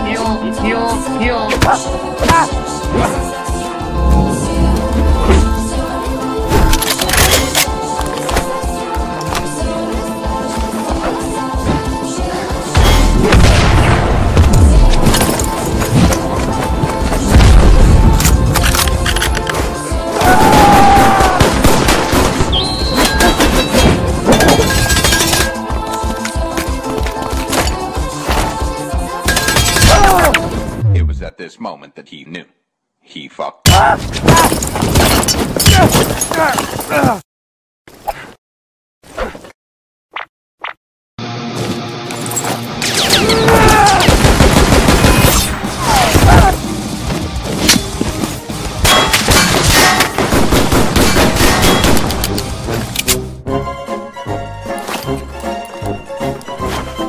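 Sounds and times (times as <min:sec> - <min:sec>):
background music: 0:00.0 - 0:32.5, 0:41.2 - 0:57.0
person speaking: 0:30.8 - 0:32.5.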